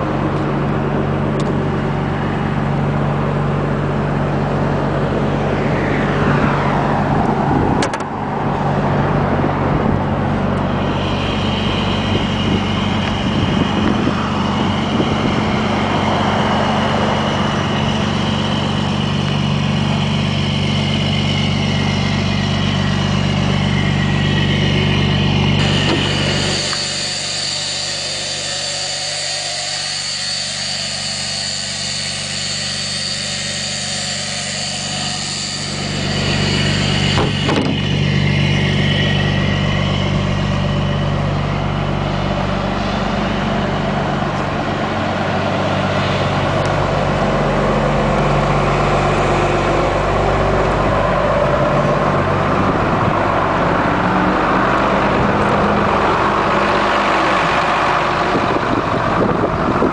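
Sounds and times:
diesel bus engine idling: 0:00.0 - 0:06.2, 0:07.0 - 0:26.9, 0:35.8 - 0:59.9.

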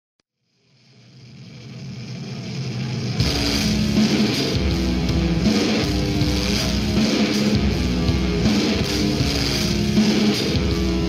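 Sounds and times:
heavy electric guitar riff: 0:02.9 - 0:11.0.

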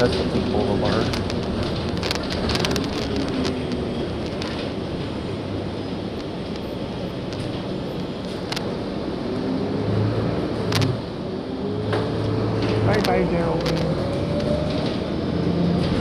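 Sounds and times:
bus drivetrain whine: 0:00.0 - 0:16.0.

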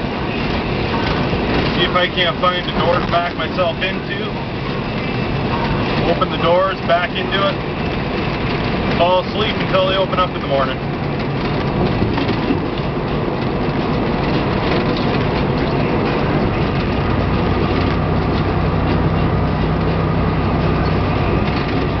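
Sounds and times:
diesel engine drone: 0:00.0 - 0:22.0
tyre and road noise: 0:00.0 - 0:22.0.

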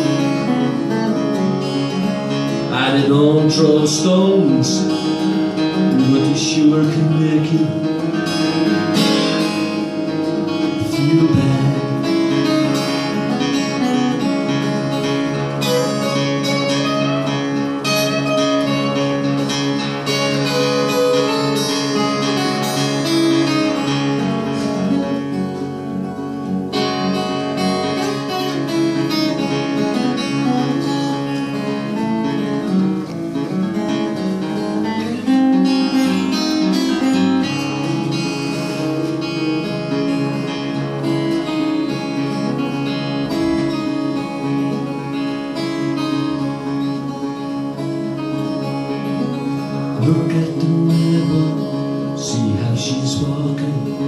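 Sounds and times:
acoustic guitar solo: 0:00.0 - 0:54.0.

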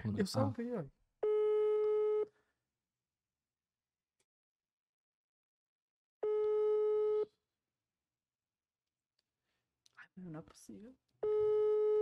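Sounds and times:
telephone ringback tone: 0:11.2 - 0:12.0.

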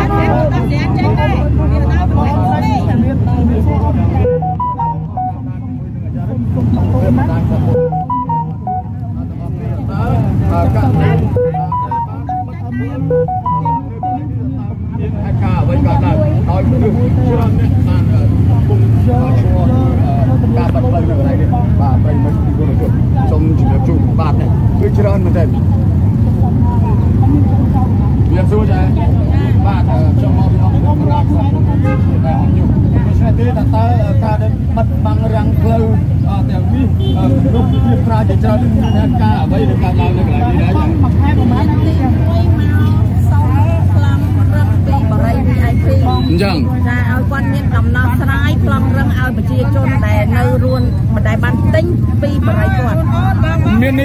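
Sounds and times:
woman talking into microphones: 0:41.3 - 0:53.6.

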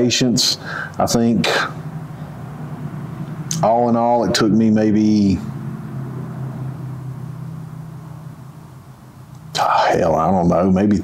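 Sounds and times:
low hum of room noise: 0:00.0 - 0:11.0.

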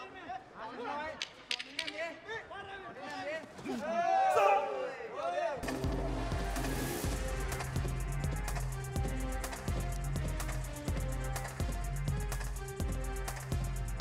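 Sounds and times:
excited shouting voices: 0:03.8 - 0:05.6
music with heavy bass beat: 0:05.6 - 0:14.0.

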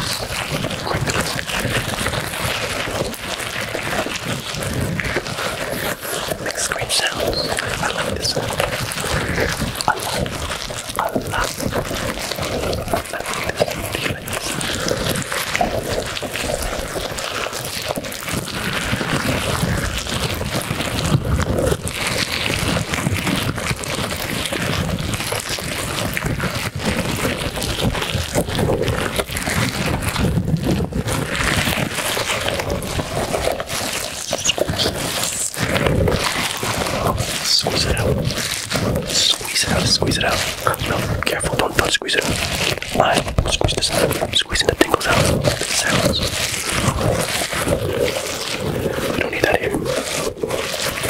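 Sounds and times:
squishy ball rustling and rubbing: 0:00.0 - 0:51.0.

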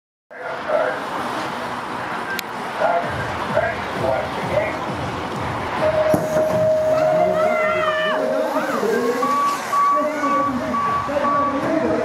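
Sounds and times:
electronic beeper short beeps: 0:08.2 - 0:11.6.

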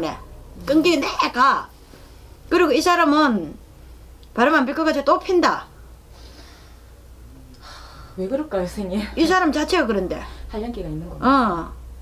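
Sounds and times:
low steady hum: 0:00.0 - 0:12.0
faint breaths drawn in: 0:06.1 - 0:07.0.

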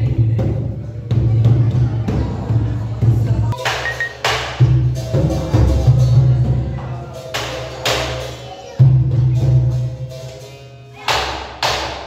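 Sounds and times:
hand drum slaps: 0:03.6 - 0:05.8, 0:07.3 - 0:08.3, 0:11.1 - 0:12.0.

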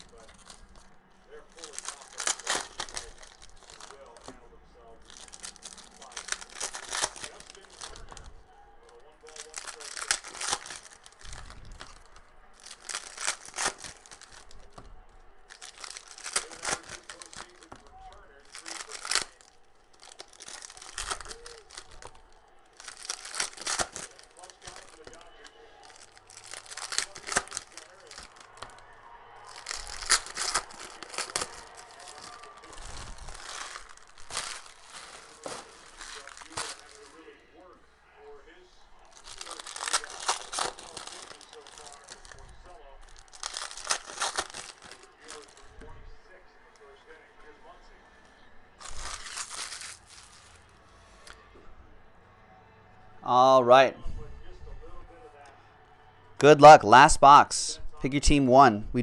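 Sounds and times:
foil wrappers tearing and crinkling: 0:00.0 - 0:37.4, 0:39.1 - 0:46.0, 0:48.8 - 0:51.4.

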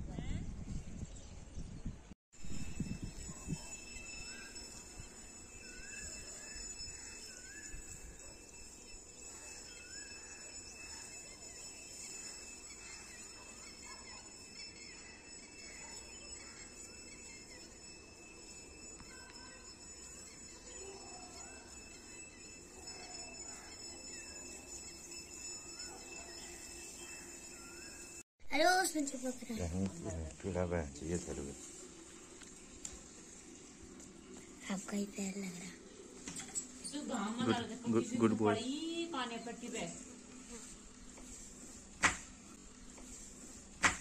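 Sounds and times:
faint bird chirps: 0:00.9 - 0:28.2
thin high-pitched drone: 0:02.4 - 0:28.2, 0:29.0 - 0:41.8.

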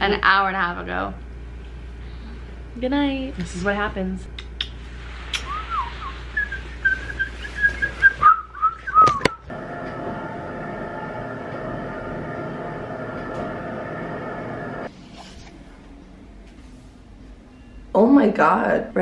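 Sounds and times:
person whistling a tune: 0:05.3 - 0:09.4
drone of held tones: 0:09.5 - 0:14.9.

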